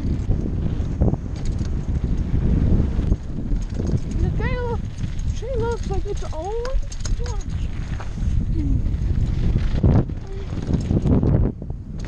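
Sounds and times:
bike knocking and rattling: 0.0s - 12.0s
bike tyres rumbling on dirt: 0.0s - 12.0s
wind on microphone: 0.0s - 12.0s.

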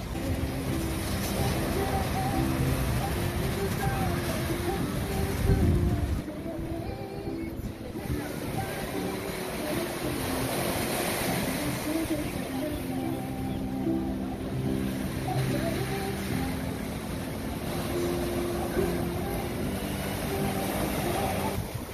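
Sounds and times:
wind noise: 0.0s - 9.8s, 18.7s - 21.9s
boat engine running: 0.0s - 21.9s
surf: 0.0s - 21.9s.

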